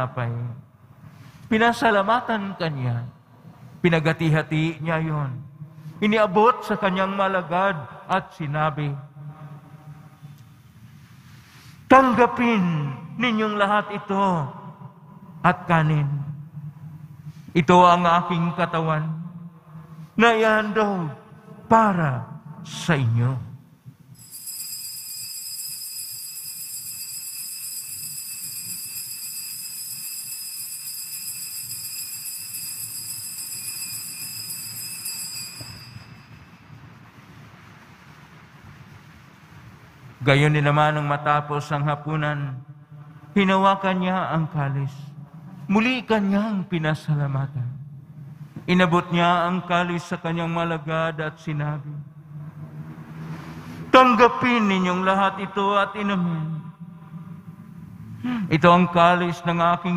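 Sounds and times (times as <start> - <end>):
man chanting: 20.2 - 23.5, 43.4 - 45.1, 48.7 - 52.0, 53.9 - 56.8, 58.4 - 59.9
altar bells ringing: 24.1 - 37.0.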